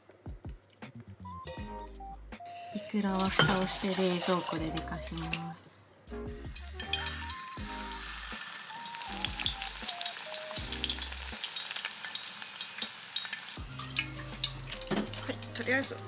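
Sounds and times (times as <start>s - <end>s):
oil sizzling while deep-frying: 2.6s - 5.4s, 6.3s - 16.0s.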